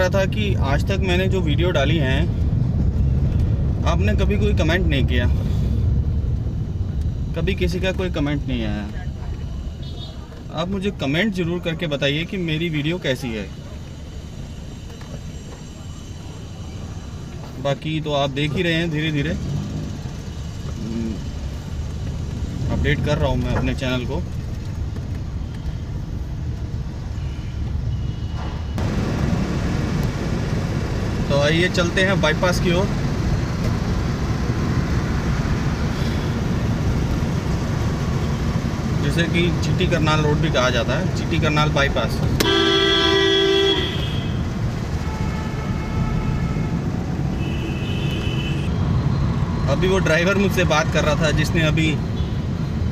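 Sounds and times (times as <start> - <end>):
car engine and road rumble: 0.0 - 52.9
high-pitched horn toot: 42.4 - 44.4
car horn blast: 42.4 - 48.7.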